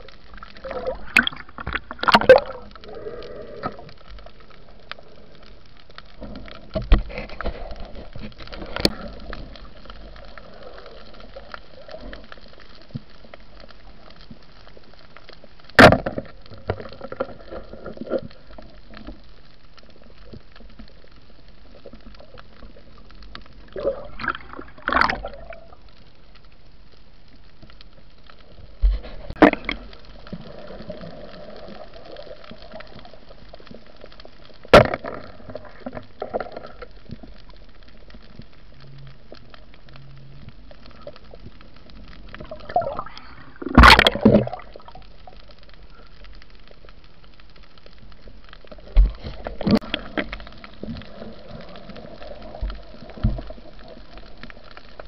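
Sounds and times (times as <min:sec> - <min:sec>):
underwater hiss of water: 0:02.5 - 0:05.5, 0:42.6 - 0:45.0.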